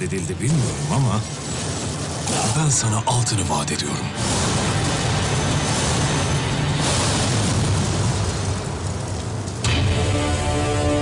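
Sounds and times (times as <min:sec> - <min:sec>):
sudden sharp hit: 0:04.2 - 0:08.8.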